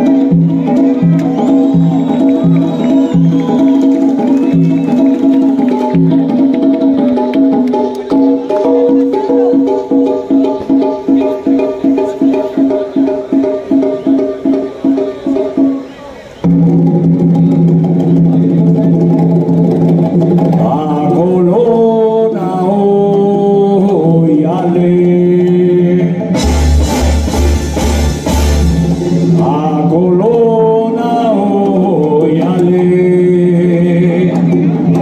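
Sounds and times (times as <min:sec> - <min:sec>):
congas and timbales: 0:00.0 - 0:35.0
latin band music: 0:00.0 - 0:35.0
accented chord hits: 0:26.3 - 0:29.6.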